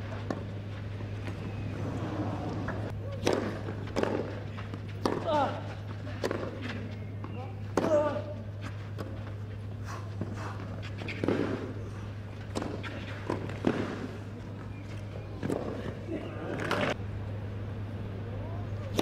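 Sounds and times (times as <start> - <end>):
tennis ball hit by racquet: 3.1 - 5.5, 11.0 - 11.7, 12.5 - 14.2.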